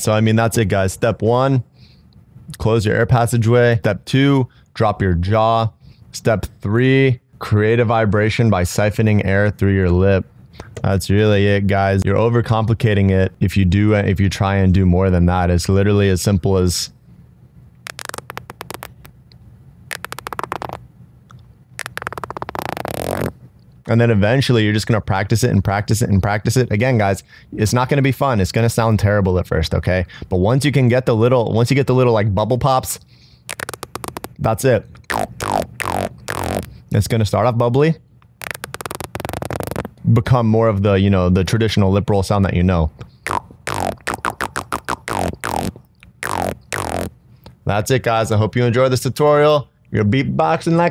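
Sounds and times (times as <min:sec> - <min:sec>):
beatbox lip roll: 0:17.8 - 0:19.2, 0:19.9 - 0:23.4, 0:33.5 - 0:34.4, 0:35.0 - 0:36.8, 0:38.2 - 0:40.0, 0:43.0 - 0:47.2.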